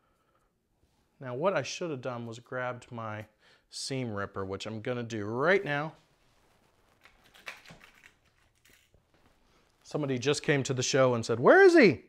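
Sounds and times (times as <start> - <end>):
rustling of small objects: 6.0 - 10.4.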